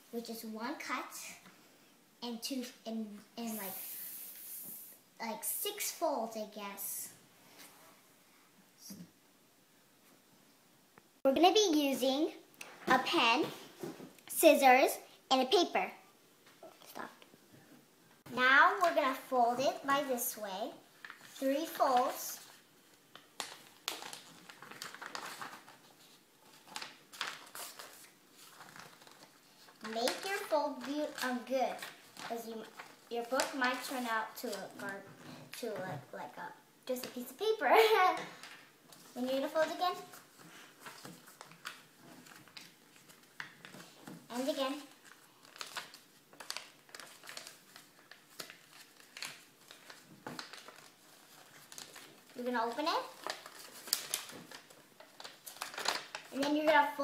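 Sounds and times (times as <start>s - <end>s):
paper rustling and crinkling: 21.0s - 35.9s, 37.0s - 57.0s.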